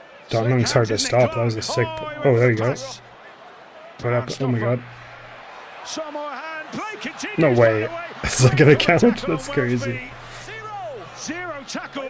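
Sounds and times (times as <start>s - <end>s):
man talking: 0.3s - 3.0s, 4.0s - 5.0s, 6.0s - 12.0s.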